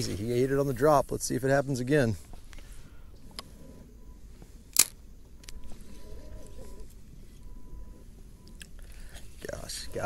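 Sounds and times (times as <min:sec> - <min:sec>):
low steady rumble: 0:00.0 - 0:10.0
sharp click: 0:04.7 - 0:05.7.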